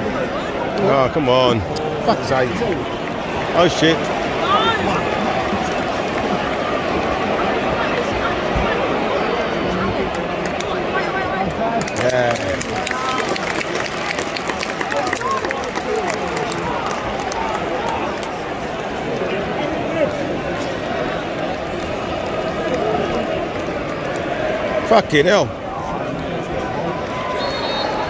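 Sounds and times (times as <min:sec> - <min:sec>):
crowd voices talking: 0:00.0 - 0:28.0
scattered clapping: 0:02.2 - 0:07.3, 0:10.0 - 0:10.8, 0:11.4 - 0:18.9, 0:21.3 - 0:24.6.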